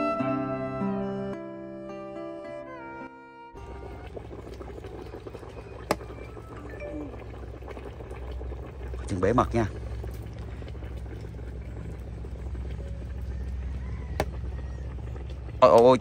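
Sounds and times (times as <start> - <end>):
porridge bubbling in pot: 3.6 - 16.0.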